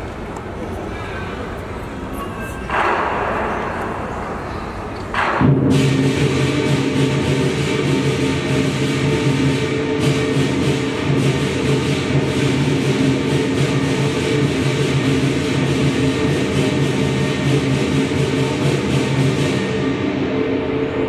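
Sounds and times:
cymbals crashing: 0.9s - 21.0s
gong: 2.1s - 21.0s
drums: 5.1s - 21.0s.

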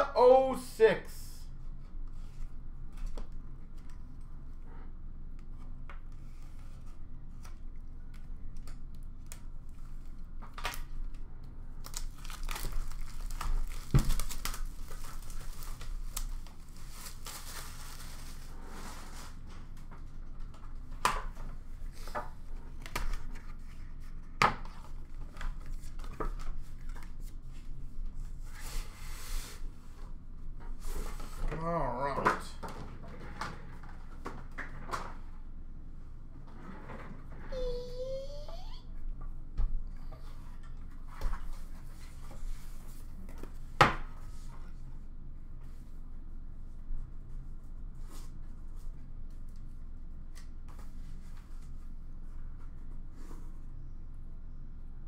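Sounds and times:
plastic wrapping tearing and crinkling: 11.8s - 18.5s.

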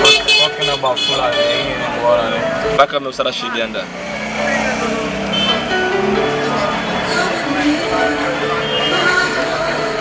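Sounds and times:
music from outside: 0.0s - 10.0s
street voices: 0.0s - 10.0s.

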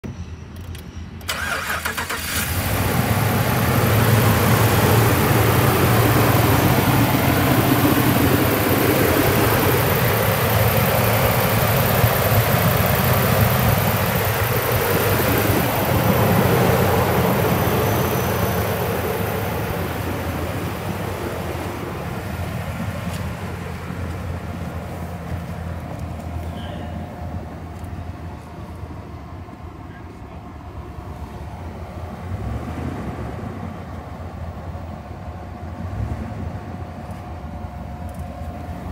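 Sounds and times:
truck engine idling: 0.7s - 38.9s.

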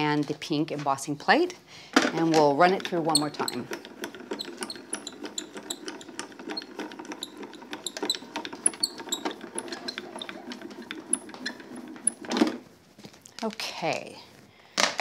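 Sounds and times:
gears clicking rapidly: 2.6s - 11.8s.

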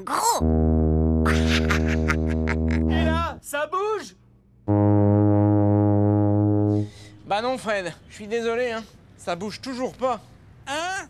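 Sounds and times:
sousaphone long low note: 0.4s - 3.2s, 4.7s - 7.1s.

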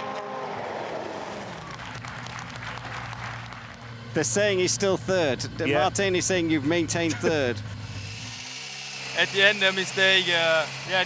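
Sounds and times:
car engine: 0.0s - 11.0s
spectators applauding: 1.3s - 3.8s.

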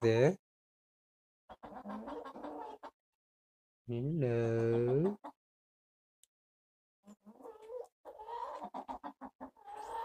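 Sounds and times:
hens calling: 1.5s - 2.9s, 7.1s - 10.0s
hens clucking: 1.5s - 3.0s, 4.4s - 5.4s, 7.1s - 10.0s.

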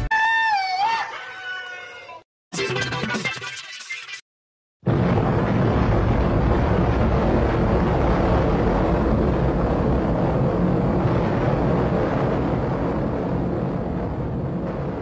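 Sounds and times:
deep rumble of explosion: 4.8s - 15.0s.

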